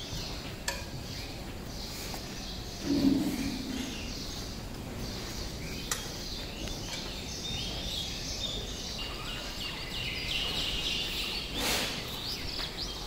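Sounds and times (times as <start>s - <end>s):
low background hum: 0.0s - 13.0s
small birds chirping: 0.0s - 13.0s.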